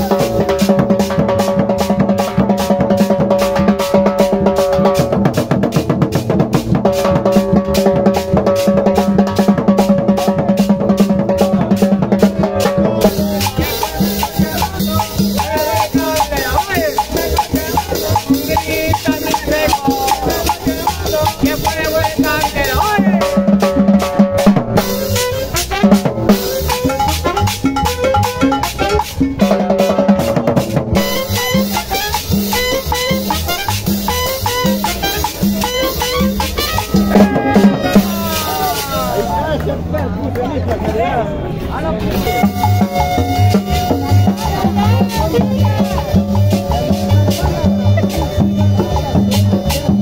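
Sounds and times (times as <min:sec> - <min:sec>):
drum kit with cymbal: 0:00.0 - 0:39.5, 0:42.1 - 0:50.0
congas: 0:00.0 - 0:41.0, 0:42.0 - 0:50.0
saxophone melody: 0:12.9 - 0:30.3, 0:31.0 - 0:39.4, 0:42.1 - 0:50.0
trumpet melody: 0:13.0 - 0:30.4, 0:31.0 - 0:39.4, 0:42.1 - 0:50.0.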